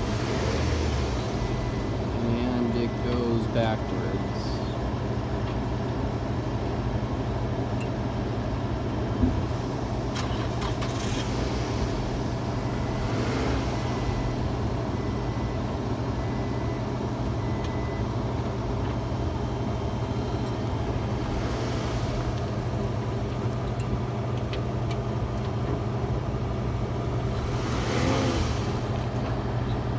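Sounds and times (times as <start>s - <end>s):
car engine idling: 0.0s - 29.9s.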